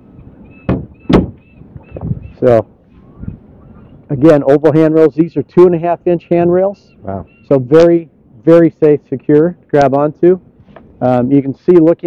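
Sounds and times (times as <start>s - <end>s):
hatch lid thumping shut: 0.7s - 1.4s.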